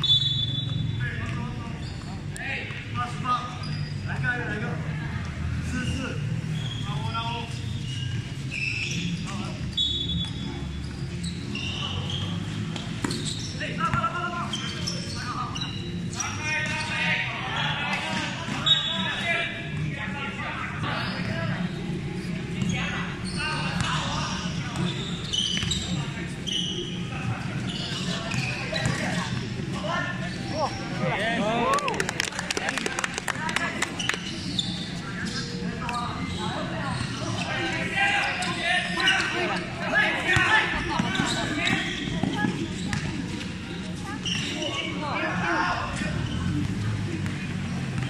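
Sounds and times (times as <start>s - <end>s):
people shouting and chatting: 0.0s - 48.0s.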